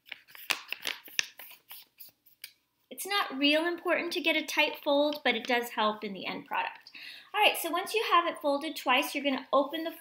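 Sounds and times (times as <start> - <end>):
paper being folded and creased: 0.0 - 2.5.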